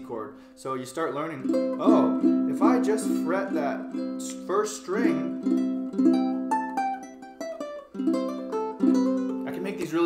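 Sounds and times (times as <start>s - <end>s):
ukulele strummed chords: 1.2s - 10.0s
ukulele picked notes: 1.3s - 10.0s.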